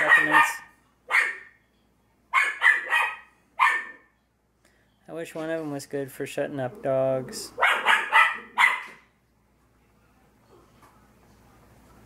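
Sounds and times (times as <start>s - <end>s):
dogs barking: 0.0s - 1.6s, 2.3s - 4.1s, 7.5s - 9.1s.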